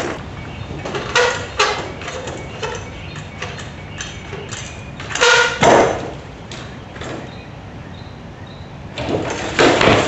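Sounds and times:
bike landing on metal table: 5.0 - 6.2, 9.0 - 10.0.

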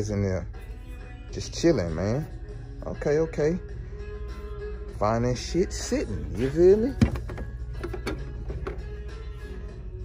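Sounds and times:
background music with low bass: 0.0 - 10.0.

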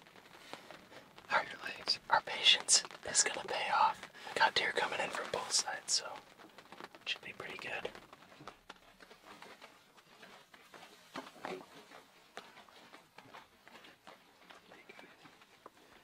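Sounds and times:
faint irregular ticks and taps: 0.0 - 16.0.

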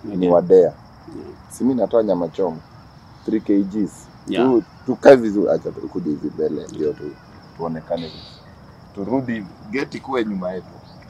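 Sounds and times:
high-pitched insect trill: 0.0 - 11.0
person's voice: 3.3 - 8.3, 9.0 - 10.6.

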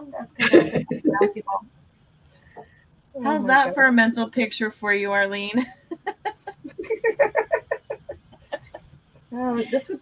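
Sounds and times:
woman laughing: 0.4 - 1.3, 5.6 - 9.0.

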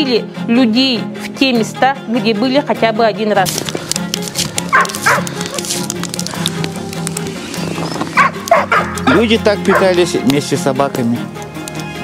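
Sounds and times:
background music: 0.0 - 12.0
dogs yipping and barking: 4.7 - 5.7, 8.0 - 9.9.

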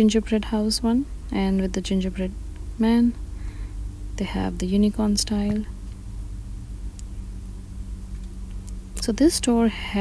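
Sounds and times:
faint background hiss: 0.0 - 10.0
steady low hum: 0.0 - 10.0.

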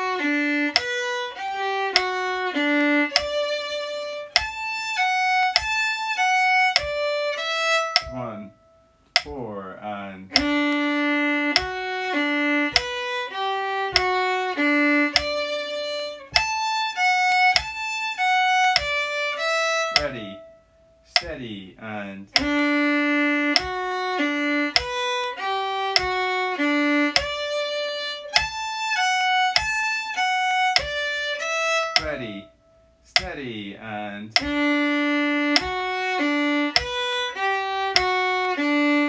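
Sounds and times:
metronome clicking: 0.0 - 39.0
violin bowed notes: 0.0 - 39.0.

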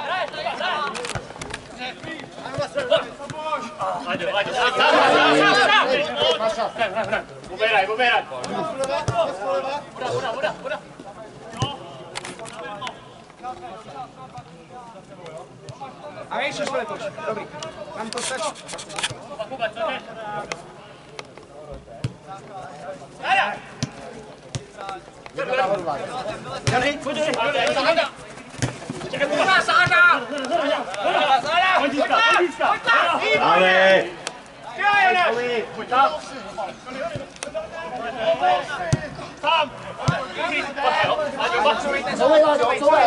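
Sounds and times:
players calling out: 0.0 - 14.3
men shouting: 4.4 - 6.5.

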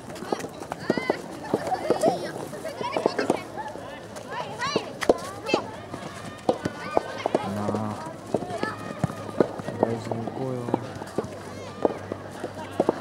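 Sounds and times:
children calling and shouting: 0.0 - 13.0.

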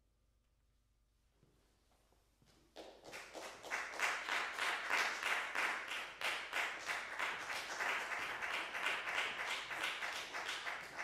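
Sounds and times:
audience applause: 3.2 - 11.0.

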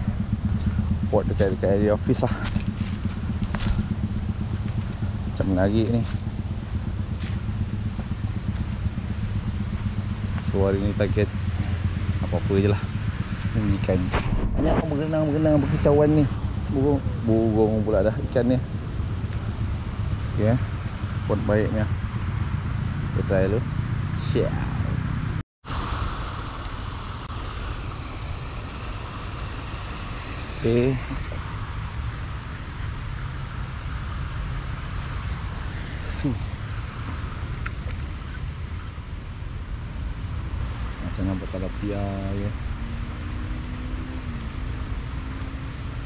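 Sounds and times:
low motor hum: 0.0 - 46.0
outdoor rushing hiss: 0.7 - 18.0, 25.6 - 38.4.

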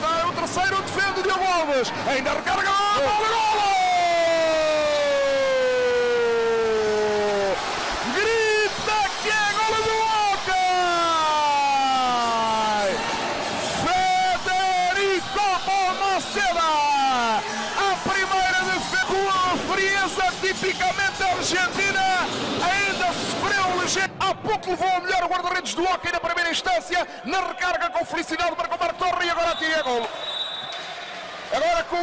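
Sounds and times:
commentator shouting goal: 0.0 - 13.0.

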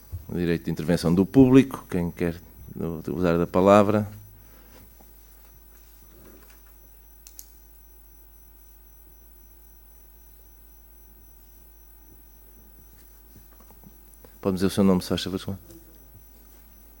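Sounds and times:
low electrical hum: 0.0 - 17.0
faint clicks: 7.2 - 7.6.

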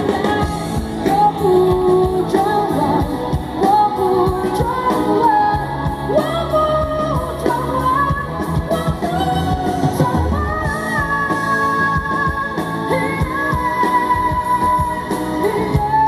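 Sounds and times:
drums: 0.0 - 16.0
electric bass: 0.0 - 16.0
woman singing: 0.0 - 16.0.

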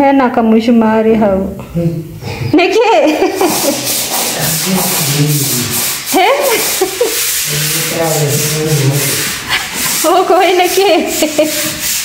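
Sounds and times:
brush scrubbing a tiled floor: 2.6 - 12.0.

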